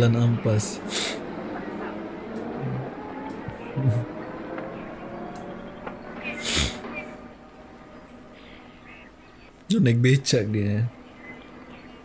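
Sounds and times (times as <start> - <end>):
hissy old film soundtrack: 0.0 - 12.0.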